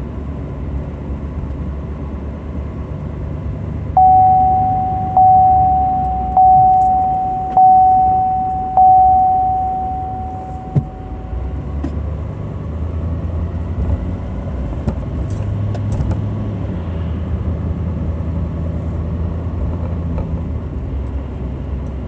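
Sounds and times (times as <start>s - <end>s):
road and engine rumble: 0.0s - 22.0s
car warning chime dinging: 4.0s - 12.0s.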